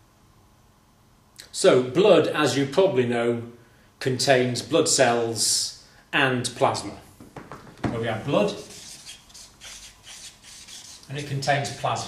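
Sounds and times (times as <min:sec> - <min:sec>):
marker pen scratching on paper: 0:08.3 - 0:12.0.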